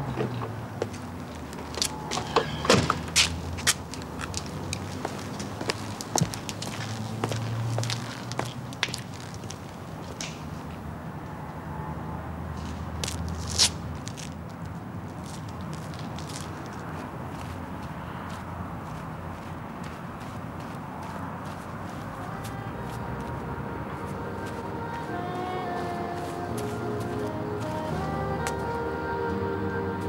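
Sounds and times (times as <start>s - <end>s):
footsteps on grass and earth: 0.8s - 10.2s, 12.6s - 28.7s.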